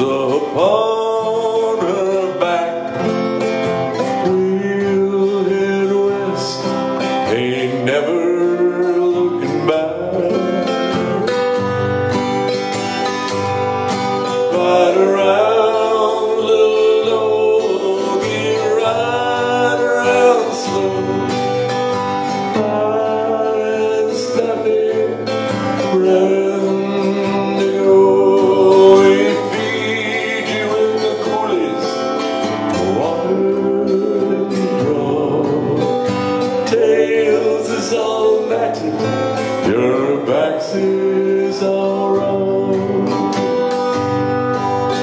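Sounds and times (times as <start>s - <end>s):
acoustic guitar: 0.0s - 45.0s
man singing folk song: 0.0s - 45.0s.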